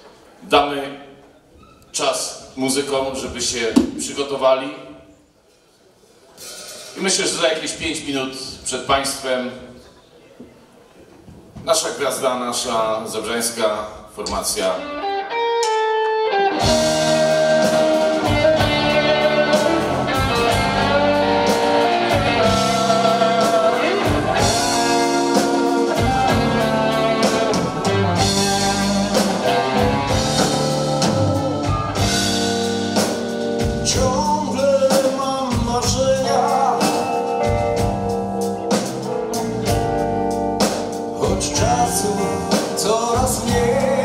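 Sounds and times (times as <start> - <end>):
blues rock band playing live: 14.8 - 44.0.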